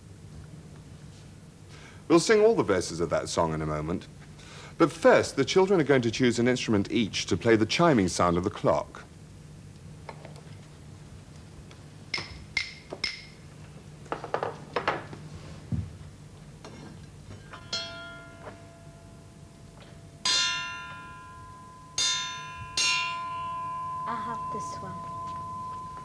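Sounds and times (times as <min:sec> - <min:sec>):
taps on metal tubes and wood: 0:12.1 - 0:13.4
triangle ringing: 0:17.3 - 0:26.0.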